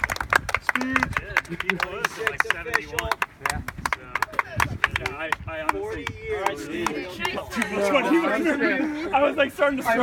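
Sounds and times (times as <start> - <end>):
hand clapping: 0.0 - 7.8
chatter: 0.6 - 10.0.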